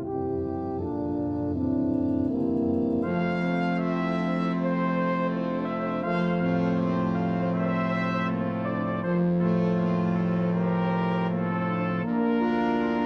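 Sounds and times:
brass orchestral music: 0.0 - 13.0.

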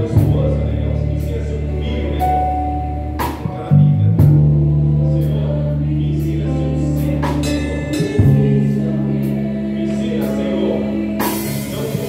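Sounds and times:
electric bass low notes: 0.0 - 12.0
group singing a hymn with band: 0.0 - 12.0.

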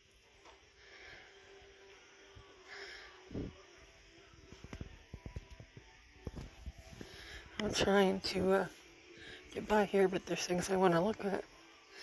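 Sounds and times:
music over loudspeaker: 1.1 - 12.0.

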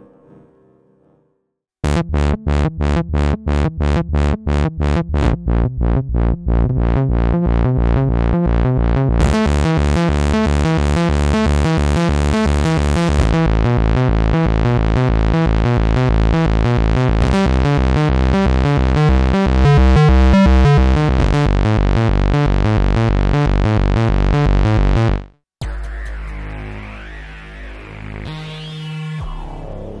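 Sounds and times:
synthesizer repeating pattern: 9.2 - 25.3.

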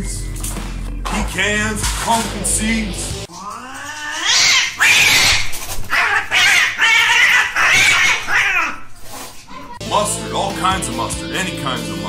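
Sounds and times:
cats screeching and yowling: 3.3 - 8.9.

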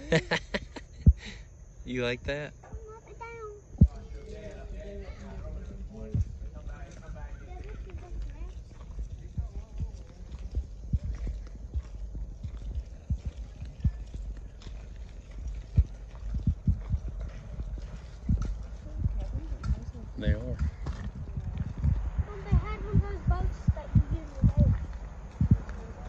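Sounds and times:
footsteps on gravel: 5.6 - 26.0
phone microphone handling rumble: 15.7 - 26.0.

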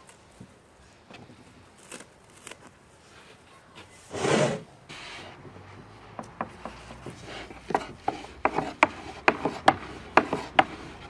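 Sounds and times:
rolling pin rubbing dough: 6.5 - 11.0.

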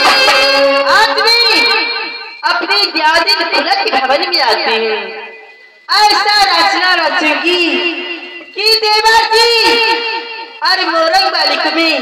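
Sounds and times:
high voice singing through microphone: 0.0 - 2.1.

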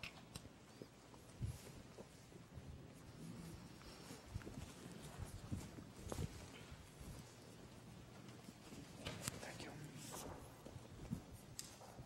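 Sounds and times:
faint whispering: 2.4 - 10.6.

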